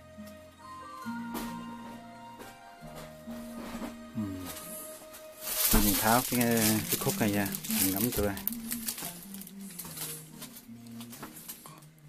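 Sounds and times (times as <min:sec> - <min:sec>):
faint background music: 0:00.0 - 0:12.0
plastic bag crinkling: 0:05.2 - 0:11.8.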